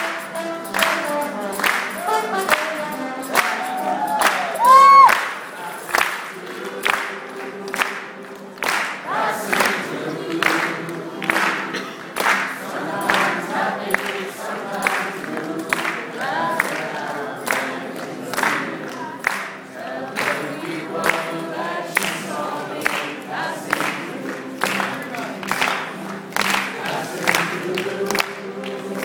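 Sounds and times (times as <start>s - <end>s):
sharp hand claps: 0.0s - 14.2s, 17.5s - 20.4s, 22.0s - 22.2s, 22.8s - 29.0s
crowd singing in chorus: 0.0s - 29.0s.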